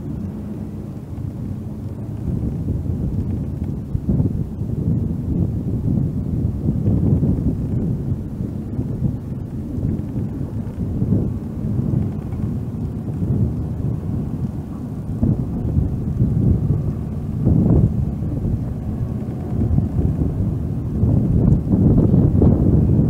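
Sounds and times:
wind buffeting microphone: 0.0s - 23.0s.

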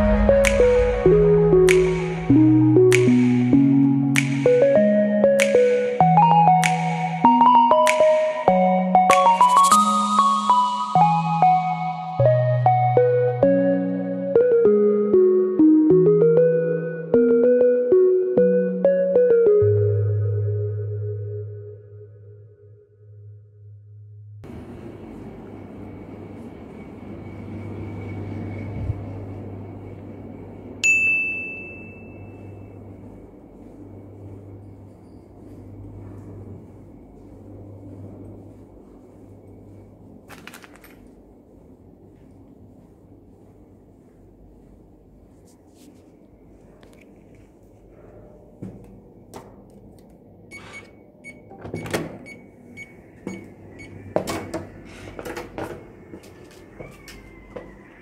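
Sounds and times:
steady low hum: 0.0s - 9.1s, 10.9s - 40.3s, 41.0s - 51.6s
faint high whine: 24.4s - 40.2s
bright ding: 30.8s - 32.7s
key-card door lock beeping: 50.5s - 53.9s.

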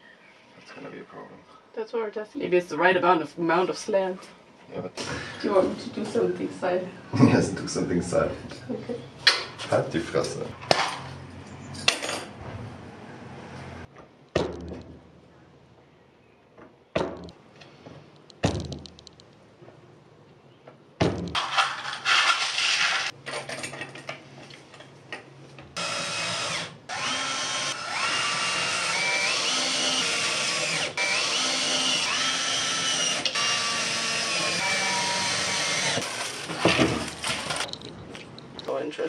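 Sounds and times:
clatter of parts handled: 21.4s - 24.9s, 36.1s - 38.7s
cordless drill motor whining: 25.8s - 37.6s.

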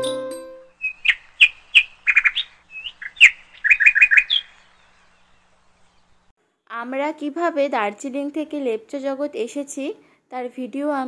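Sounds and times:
flute music: 0.0s - 0.8s
small bird chirping: 0.7s - 6.3s.

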